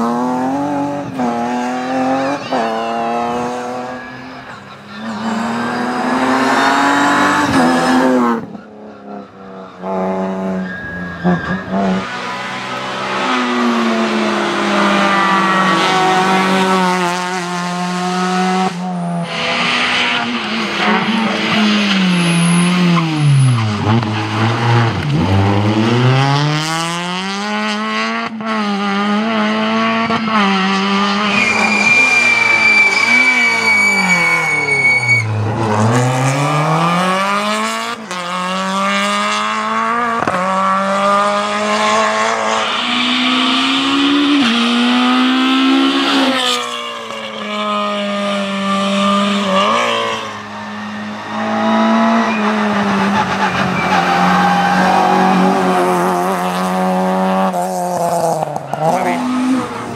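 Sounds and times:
rally car engines revving: 0:00.0 - 0:59.9
tyres squealing: 0:31.2 - 0:35.4.

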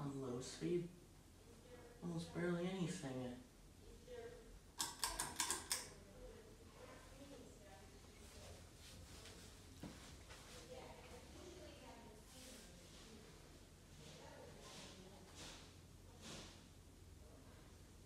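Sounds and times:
ceiling fan faint low hum: 0:00.0 - 0:18.0.

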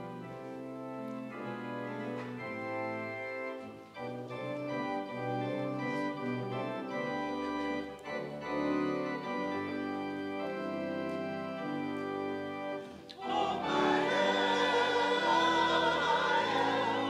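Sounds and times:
church organ playing chords: 0:00.0 - 0:17.0
congregation singing a hymn: 0:00.0 - 0:17.0.

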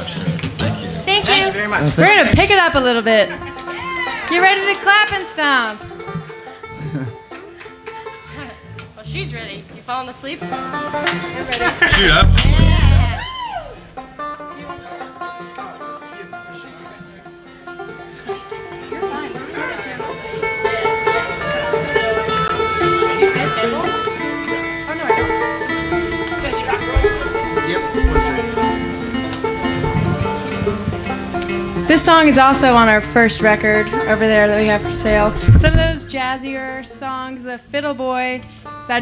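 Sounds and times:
acoustic string band playing: 0:00.0 - 0:39.0.

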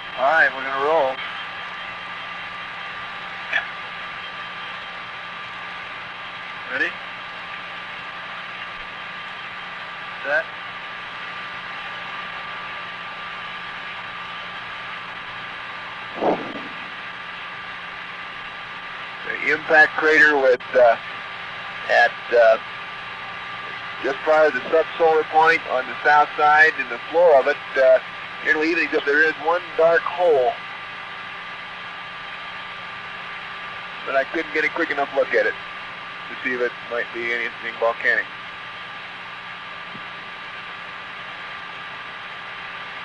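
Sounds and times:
tape hiss and hum: 0:00.0 - 0:43.0.

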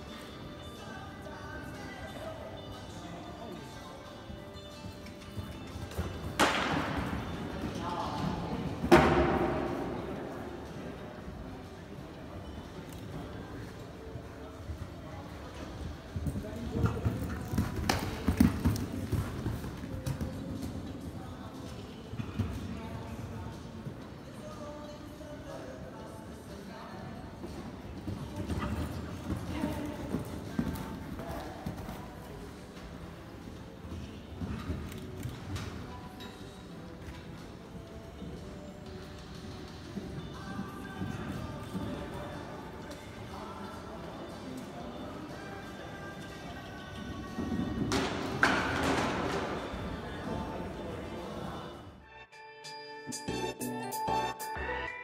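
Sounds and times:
faint background music: 0:00.0 - 0:55.0
horse hoofbeats on sand: 0:15.6 - 0:21.5, 0:38.8 - 0:43.2.

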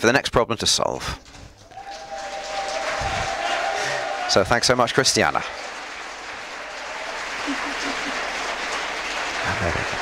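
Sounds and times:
audience applause: 0:01.5 - 0:10.0.

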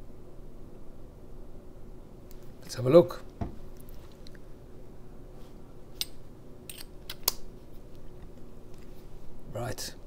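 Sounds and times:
small sharp clicks: 0:06.0 - 0:08.4.

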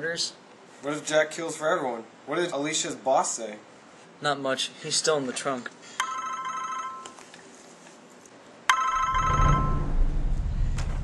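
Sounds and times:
phone ringing chime: 0:06.0 - 0:07.2, 0:08.7 - 0:10.0
low background rumble: 0:09.0 - 0:11.0.

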